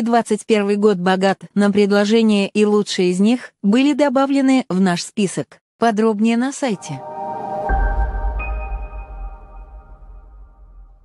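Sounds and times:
ringing synth tones: 6.7 - 11.0
low rumble: 6.8 - 11.0.

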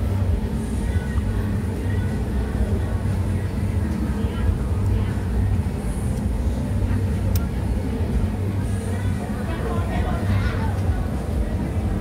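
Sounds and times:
faint voices: 0.0 - 12.0
low street rumble: 0.0 - 12.0.

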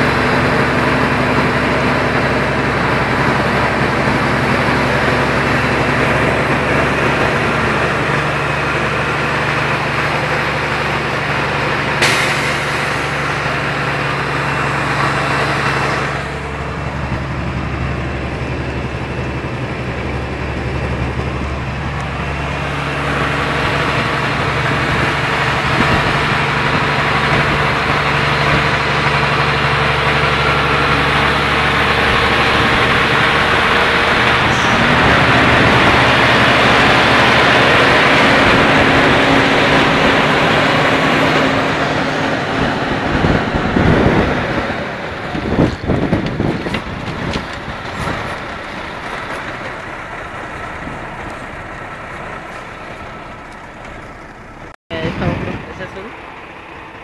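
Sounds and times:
road noise: 0.0 - 57.0
car engine drone from cabin: 30.3 - 43.2.

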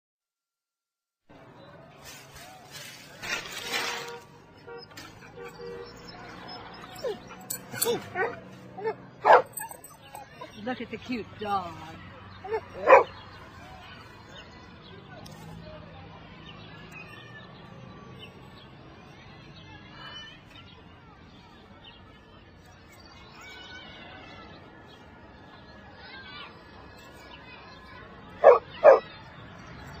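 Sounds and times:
small dog barking: 7.8 - 9.6, 12.5 - 13.1, 28.4 - 29.1.

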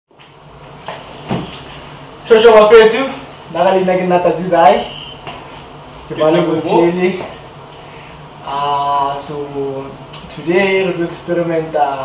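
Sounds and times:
low room hum: 0.1 - 12.0.

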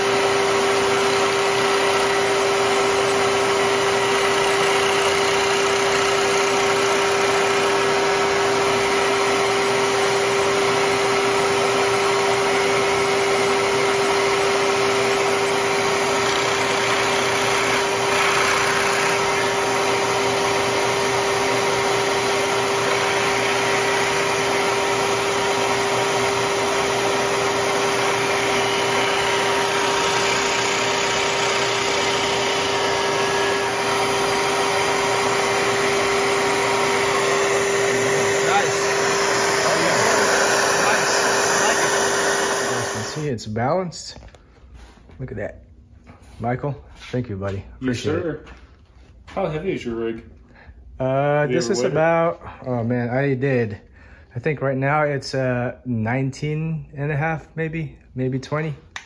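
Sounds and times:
milling machine cutting: 0.0 - 43.3.

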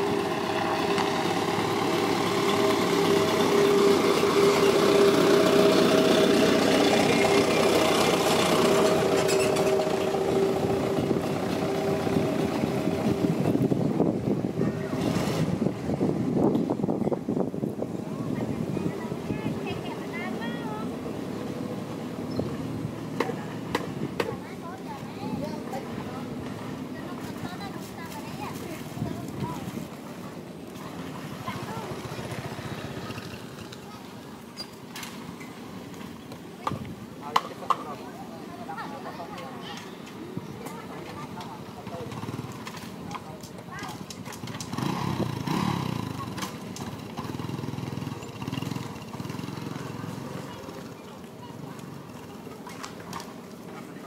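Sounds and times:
people talking in background: 0.0 - 54.0.

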